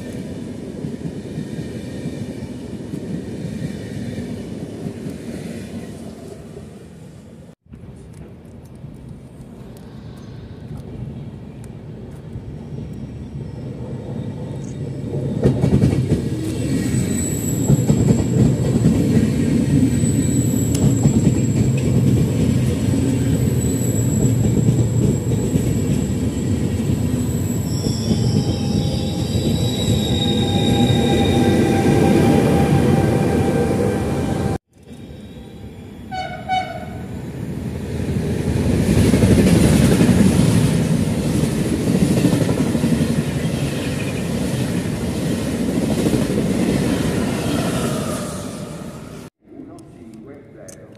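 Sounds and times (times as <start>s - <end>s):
passing train rumbling: 0.0s - 50.6s
train wheels rumbling on rails: 7.7s - 35.1s, 37.5s - 49.3s
high squealing of brakes: 12.5s - 15.6s, 16.4s - 18.9s, 19.7s - 21.8s, 23.1s - 36.6s
two-note train horn: 36.1s - 37.0s.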